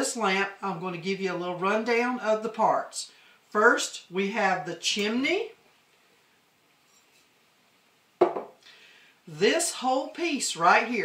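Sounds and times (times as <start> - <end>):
glass set down on wooden table: 8.2 - 8.6.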